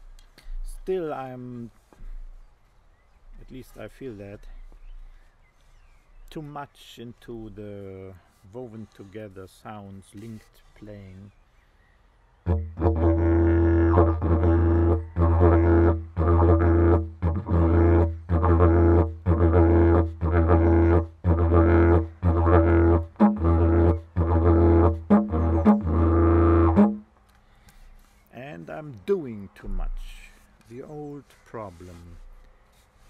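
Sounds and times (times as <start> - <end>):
didgeridoo drone: 12.5 - 27.0.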